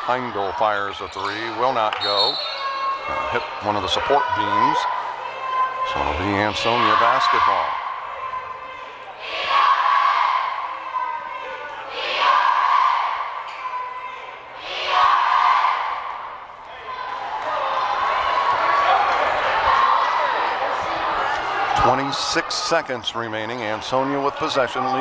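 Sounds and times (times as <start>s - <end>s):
crowd shouting: 2.2s - 22.9s.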